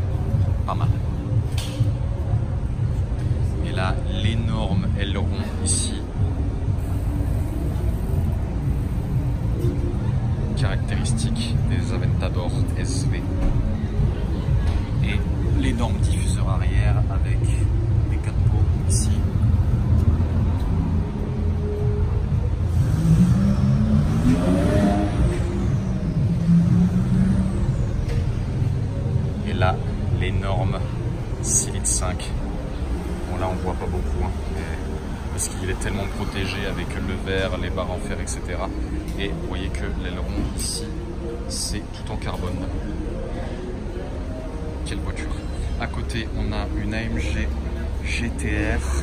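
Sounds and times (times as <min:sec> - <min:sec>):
street rumble: 0:00.0 - 0:49.0
car revving or passing: 0:17.4 - 0:49.0.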